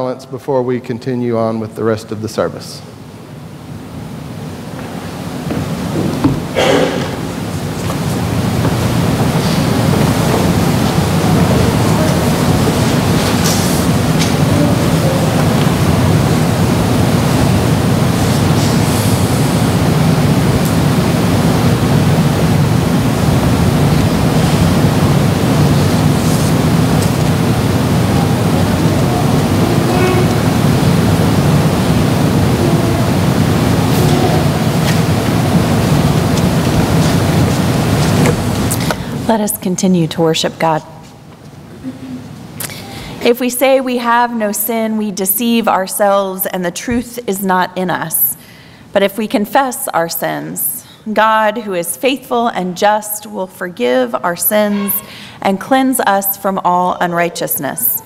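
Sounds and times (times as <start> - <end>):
room noise hiss: 0.0 - 58.0
faint congregation sounds: 1.1 - 39.4.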